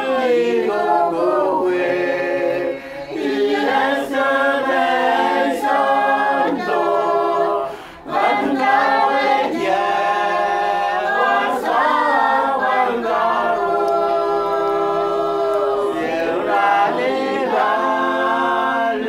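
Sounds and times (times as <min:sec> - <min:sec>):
group singing a hymn unaccompanied: 0:00.0 - 0:19.0.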